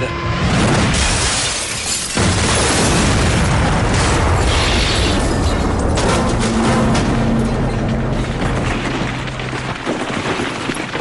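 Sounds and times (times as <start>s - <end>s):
loud explosion with rumble: 2.2s - 11.0s.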